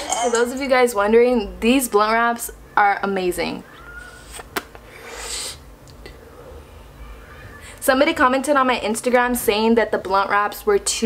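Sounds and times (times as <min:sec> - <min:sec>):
breath hiss of smoke: 0:04.1 - 0:05.6.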